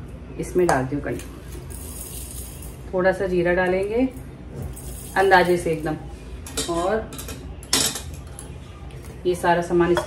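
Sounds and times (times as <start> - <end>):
steel kitchenware clinking: 6.4 - 8.4.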